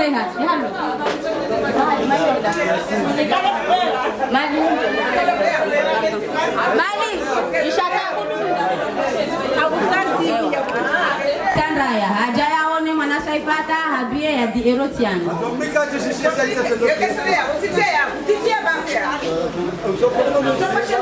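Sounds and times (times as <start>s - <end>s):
woman speaking through microphone: 0.0s - 0.9s, 11.4s - 15.4s
people talking over one another: 0.0s - 21.0s.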